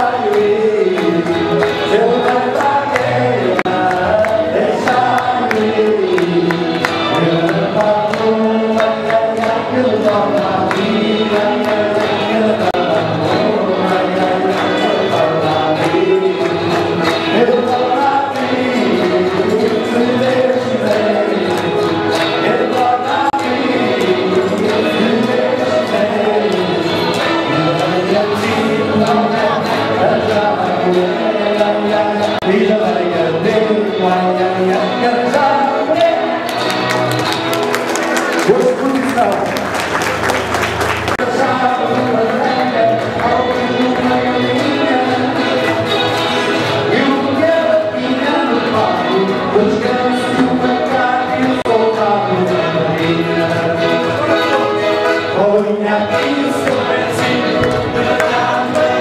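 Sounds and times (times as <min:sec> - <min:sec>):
hands clapping: 0:00.0 - 0:30.9, 0:35.4 - 0:47.0, 0:50.4 - 0:59.0
group of voices singing: 0:00.0 - 0:39.4, 0:40.0 - 0:59.0
electric guitar: 0:00.0 - 0:59.0.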